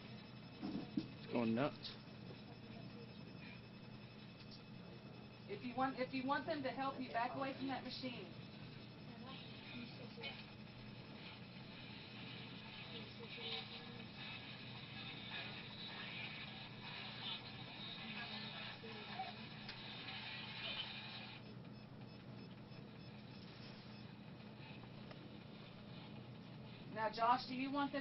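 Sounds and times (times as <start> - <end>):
radio scanner static: 0.0 - 21.4
steady low hum: 0.0 - 28.0.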